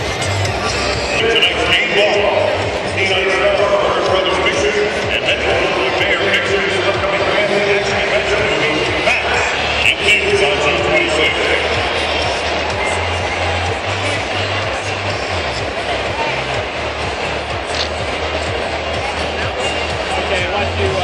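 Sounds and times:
crowd chatter: 0:00.0 - 0:21.0
music over public-address system: 0:00.0 - 0:21.0.

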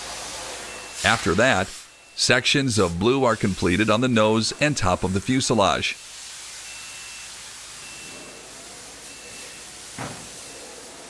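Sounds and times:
spray guns hissing: 0:00.0 - 0:11.0.

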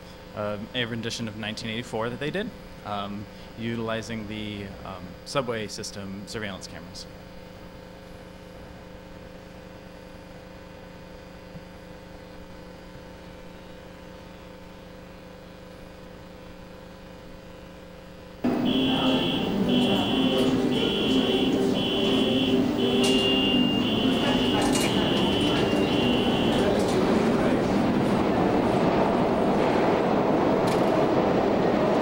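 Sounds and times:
subway station noise: 0:00.0 - 0:32.0
high electronic beep: 0:18.6 - 0:26.8.

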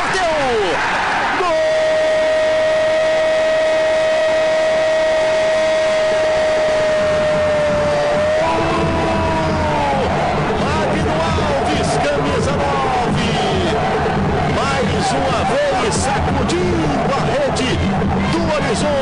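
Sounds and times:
excited shouting: 0:00.0 - 0:13.9
commentator goal shout: 0:07.0 - 0:13.8.

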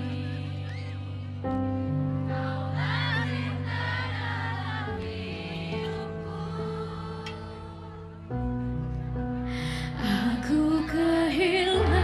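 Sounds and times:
woman singing pop ballad: 0:09.7 - 0:12.0.

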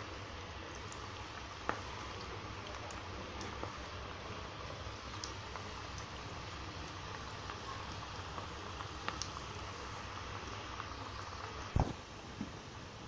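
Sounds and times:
fritters sizzling in hot oil: 0:00.0 - 0:13.0.

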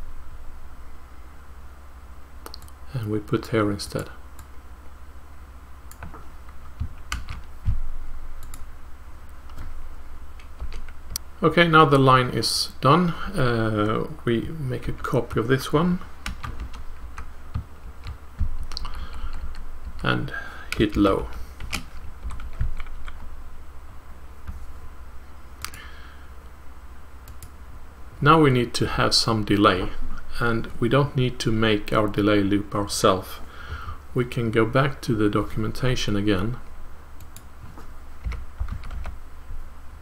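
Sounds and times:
steady low hum: 0:00.0 - 0:40.0
keyboard and mouse clicks: 0:02.4 - 0:02.8, 0:05.9 - 0:06.2, 0:08.4 - 0:08.7, 0:16.3 - 0:20.0, 0:25.6 - 0:25.8, 0:38.2 - 0:39.2
computer keyboard typing: 0:06.8 - 0:07.8, 0:10.4 - 0:11.2, 0:16.2 - 0:20.0, 0:20.7 - 0:23.2, 0:38.2 - 0:39.2.

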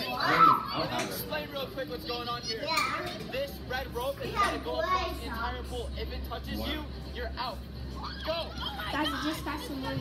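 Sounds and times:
children talking and calling out: 0:00.0 - 0:01.0.

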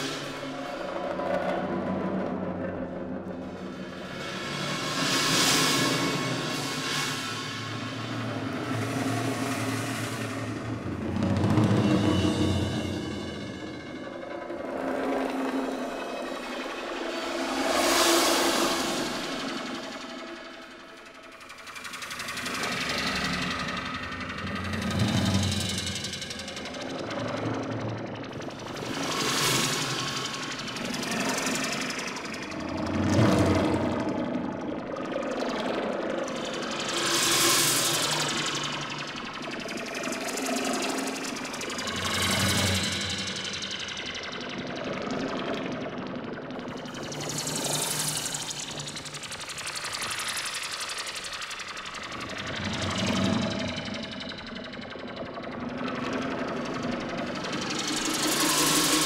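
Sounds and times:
experimental percussion and electronics: 0:00.0 - 0:59.0.

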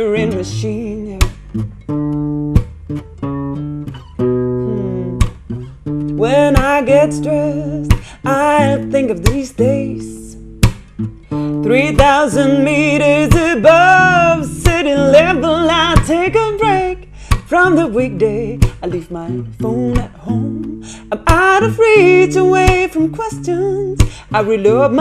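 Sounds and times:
woman singing with vibrato: 0:00.0 - 0:01.4, 0:04.6 - 0:05.4, 0:06.2 - 0:10.4, 0:11.6 - 0:25.0
acoustic guitar strumming: 0:00.0 - 0:25.0.

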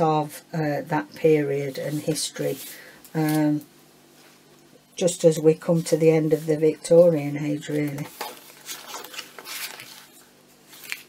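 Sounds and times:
paper rustling and scraping: 0:01.6 - 0:03.6, 0:05.6 - 0:11.0.

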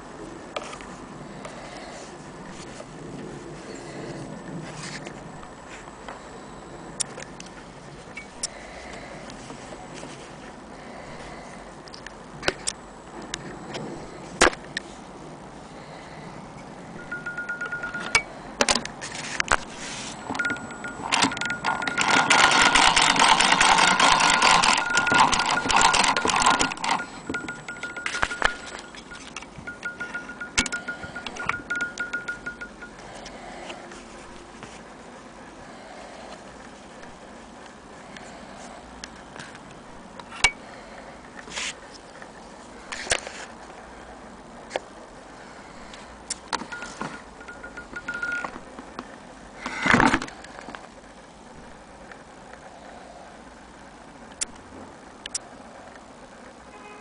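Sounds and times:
thin high tone: 0:17.0 - 0:18.4, 0:19.8 - 0:33.3, 0:46.7 - 0:48.5
sewing machine stitching: 0:20.4 - 0:28.7.

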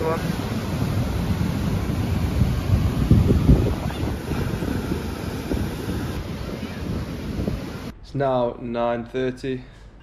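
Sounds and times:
surf breaking on beach: 0:00.0 - 0:07.9
wind buffeting microphone: 0:00.0 - 0:07.9.

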